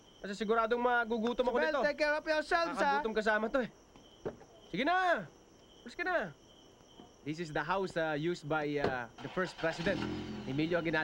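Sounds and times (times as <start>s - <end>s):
crickets trilling: 0.0s - 11.0s
person speaking: 1.1s - 3.8s.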